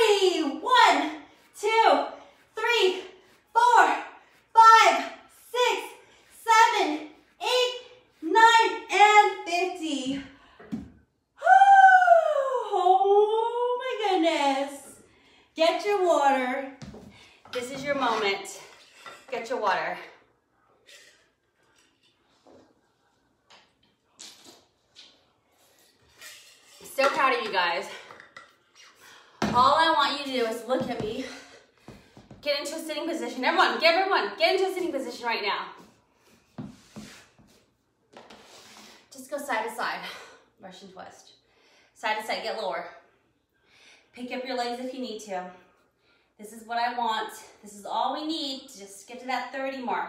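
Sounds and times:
woman talking and calling out: 0.0 - 10.4, 11.4 - 15.0, 15.6 - 16.8, 17.5 - 18.6, 29.4 - 31.4.

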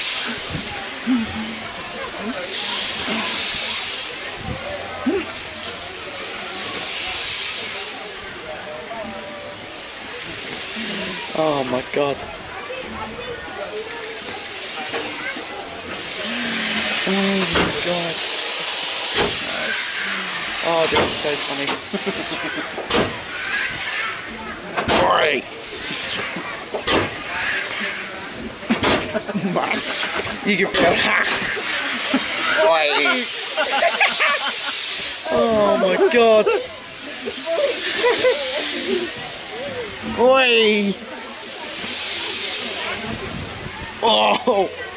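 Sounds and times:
steam engine hissing: 0.0 - 44.9
man laughing: 21.9 - 22.7, 32.6 - 36.7.

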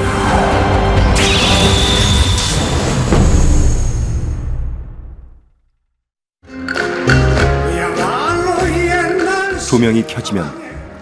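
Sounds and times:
documentary theme music: 6.4 - 11.0.

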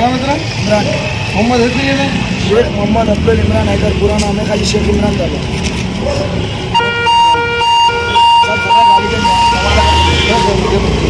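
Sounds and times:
electronic warning tone: 6.8 - 10.8.

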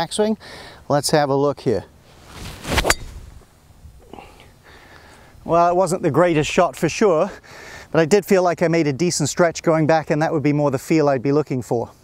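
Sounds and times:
golf club swishing through air: 2.0 - 3.4
golf club striking ball: 2.6 - 3.4.

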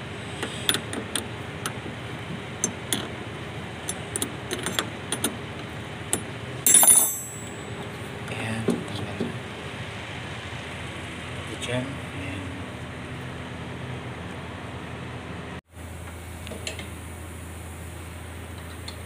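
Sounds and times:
sharp metal clink: 6.7 - 7.7.

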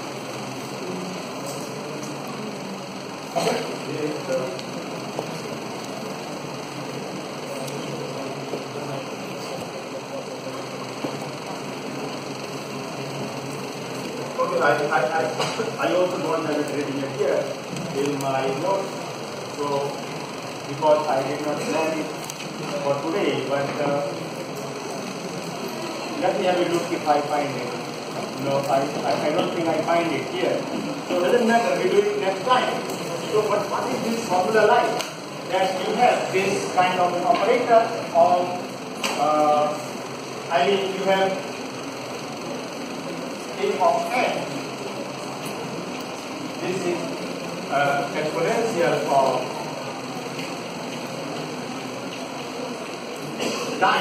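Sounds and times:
room hum: 0.0 - 54.0.

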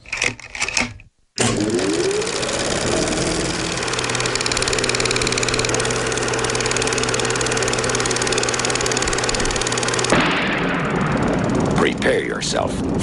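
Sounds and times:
fast mechanical clattering: 0.0 - 13.0
steady machine hum: 1.3 - 13.0.

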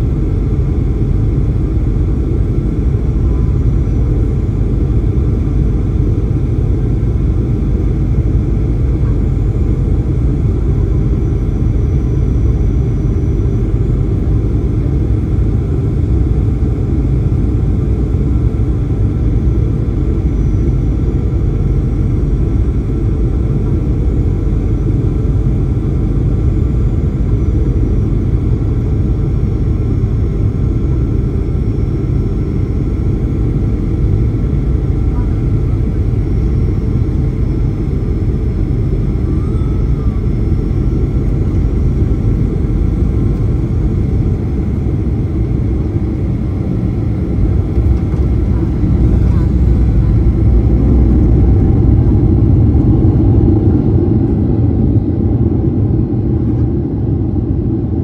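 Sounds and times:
jet airliner cabin rumble: 0.0 - 58.0.

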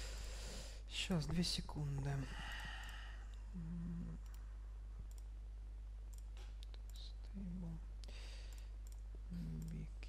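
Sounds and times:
steady low hum: 0.0 - 10.0
person humming: 3.5 - 4.3.

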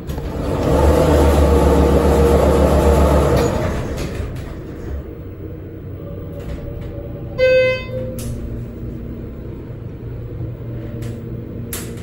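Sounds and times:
elevator door closing: 0.0 - 9.4
elevator low hum: 0.0 - 12.0.

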